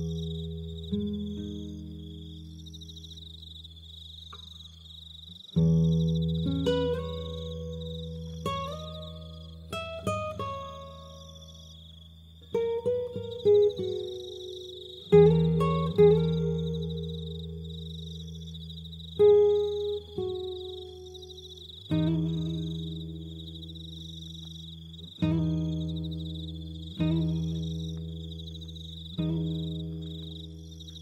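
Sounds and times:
fingerpicked acoustic guitar: 0.0 - 3.2, 5.3 - 31.0
crickets chirping: 0.0 - 31.0.

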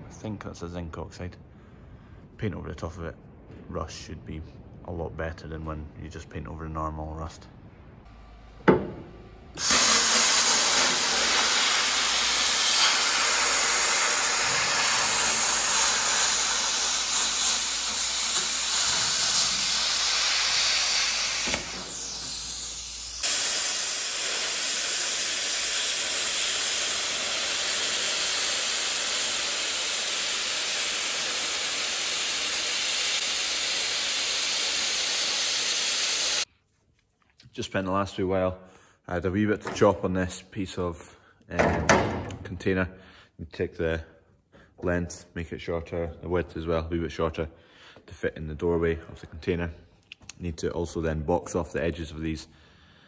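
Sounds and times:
plasma cutter hissing: 9.6 - 36.5.

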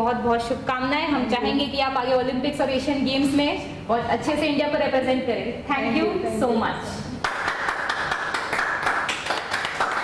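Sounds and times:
hands clapping fast: 7.2 - 10.0.

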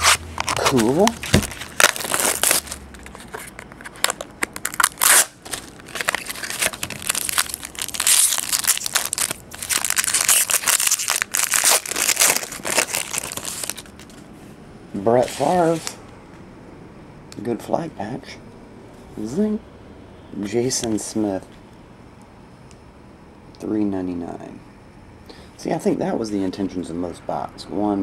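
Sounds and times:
plastic wrap crinkling: 0.0 - 14.1.

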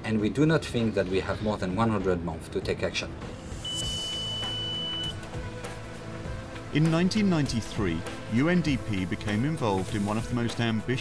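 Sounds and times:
background music: 0.0 - 11.0
high electronic beep: 3.6 - 5.3.

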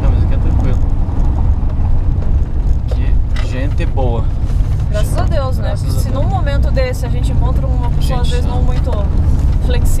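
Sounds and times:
van engine and road rumble: 0.0 - 10.0.

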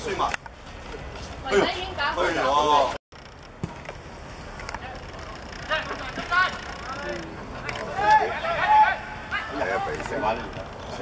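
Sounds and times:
background noise: 0.0 - 11.0
high shouted calls: 7.7 - 10.0.

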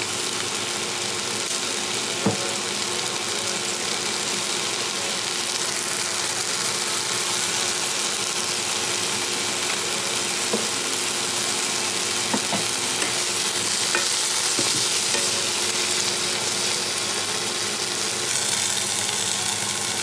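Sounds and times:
vegetables sizzling in a frying pan: 0.0 - 20.0
wooden spatula knocks: 12.3 - 12.8.

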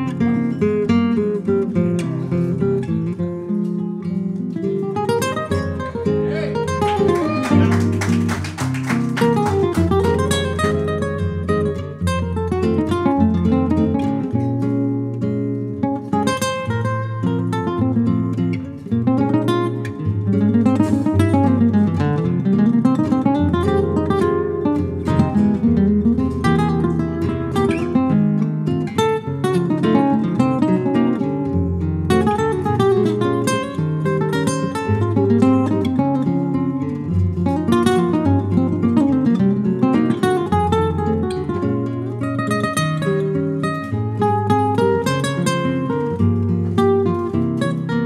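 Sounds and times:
two guitars playing quick runs: 6.5 - 10.9.

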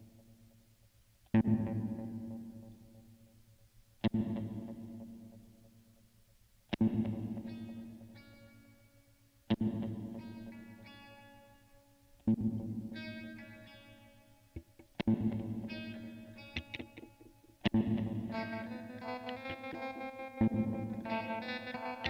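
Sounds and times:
distorted guitar chords: 1.4 - 2.7, 4.0 - 5.4, 6.7 - 8.9, 9.5 - 22.0
picked guitar notes: 6.8 - 8.8, 9.5 - 22.0.

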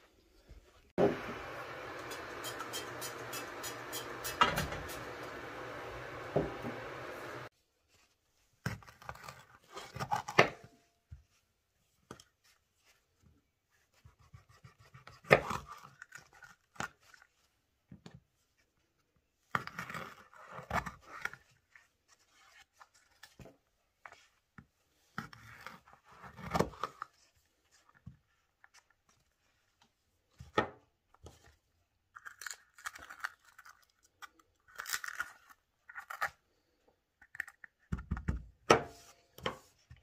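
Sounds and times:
knife cutting peppers: 1.9 - 5.4.

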